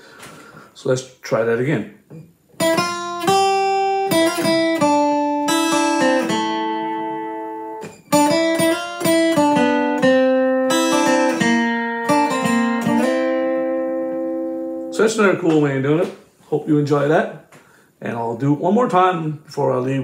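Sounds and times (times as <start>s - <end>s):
acoustic guitar picking: 2.2s - 16.3s.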